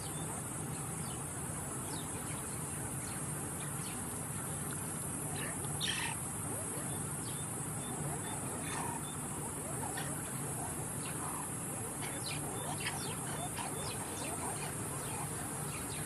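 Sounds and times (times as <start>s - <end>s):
high insect drone: 0.0s - 16.0s
mongooses chirping: 5.3s - 16.0s.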